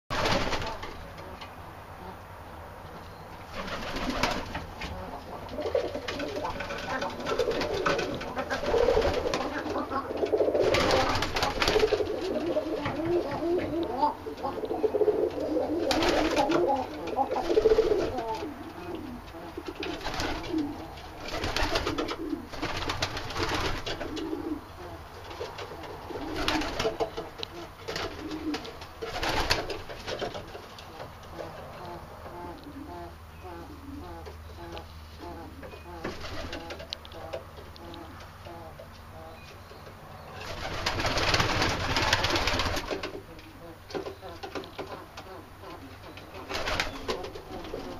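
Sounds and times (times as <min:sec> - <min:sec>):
pigeons cooing: 0:03.4 - 0:47.9.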